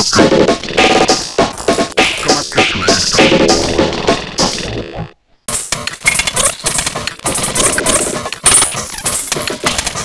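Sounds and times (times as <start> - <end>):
glitchy breakcore percussion: 0.0 - 10.0.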